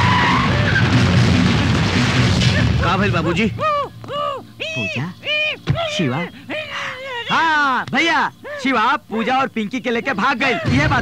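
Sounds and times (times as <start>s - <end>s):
tyres squealing: 0.0s - 1.2s
vehicle noise: 0.0s - 4.6s.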